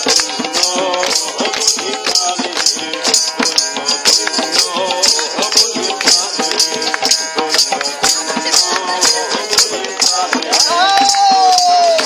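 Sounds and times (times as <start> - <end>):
hand drum: 0.0 - 12.0
jingling percussion: 0.0 - 12.0
people singing folk song: 0.0 - 12.0.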